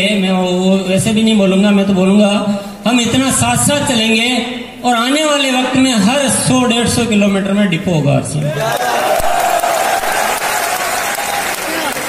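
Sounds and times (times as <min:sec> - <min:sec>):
large audience applauding: 0:08.6 - 0:12.0.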